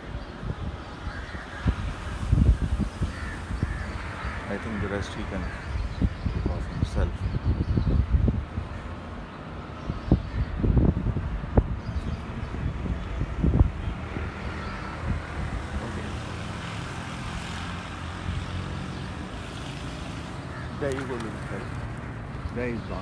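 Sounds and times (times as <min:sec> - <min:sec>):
wind rumble: 0:00.0 - 0:23.0
distant engine hum: 0:07.8 - 0:23.0.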